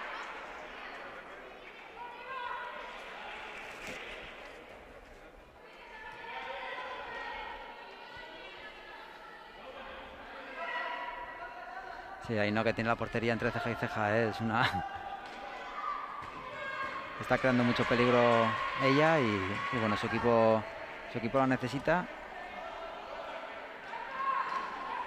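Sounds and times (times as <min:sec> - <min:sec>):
players calling out echoing: 0:05.7 - 0:25.0.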